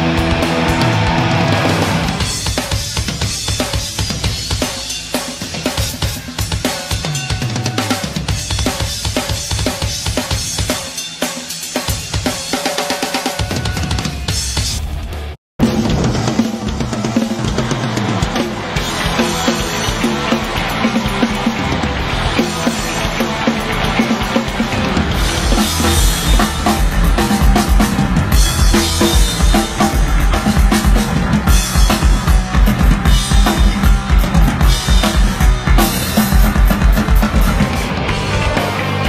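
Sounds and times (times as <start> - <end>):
heavy metal drum kit: 0.0 - 39.0.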